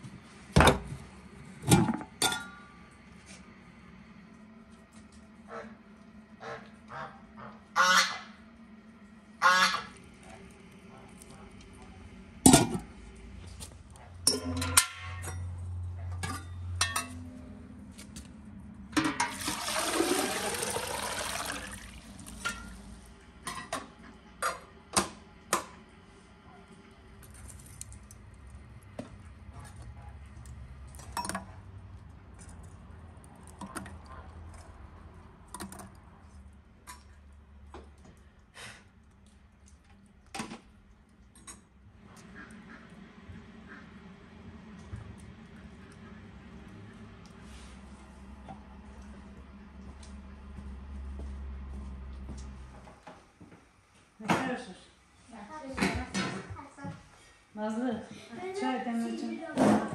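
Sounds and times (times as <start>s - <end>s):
geese honking: 6.4s - 8.4s, 9.4s - 10.0s
charcoal and metal tongs clinking: 14.2s - 15.5s.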